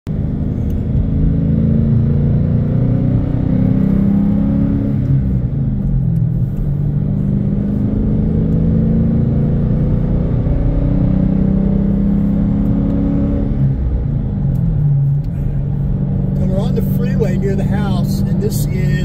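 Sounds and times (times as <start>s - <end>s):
car engine and tyre drone: 0.1s - 19.0s.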